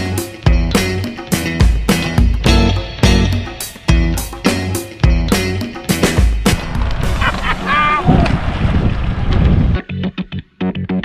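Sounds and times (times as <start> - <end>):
background music: 0.0 - 8.0
wind rushing over microphone: 6.5 - 9.8.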